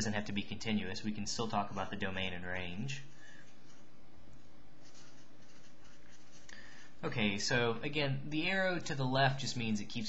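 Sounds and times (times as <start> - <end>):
felt-tip marker on paper: 4.8 - 6.5.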